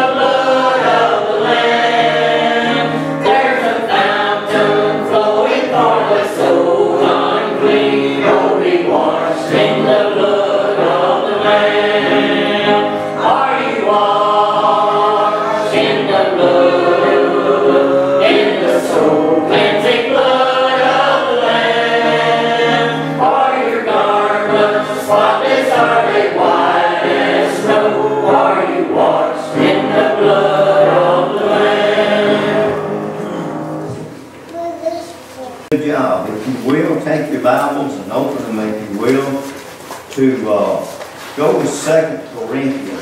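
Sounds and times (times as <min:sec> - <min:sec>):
choir singing a hymn: 0:00.0 - 0:34.3.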